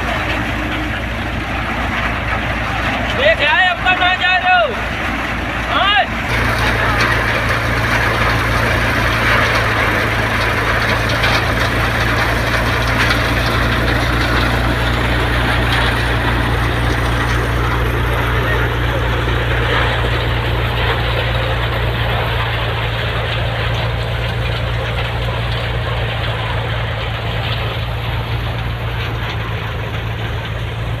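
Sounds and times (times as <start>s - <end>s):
rushing rattling of plants: 0.0s - 31.0s
thresher machine drone: 0.0s - 31.0s.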